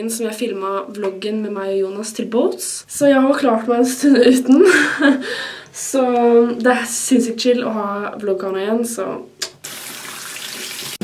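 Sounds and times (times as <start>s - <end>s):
tap water running into sink: 9.6s - 11.0s.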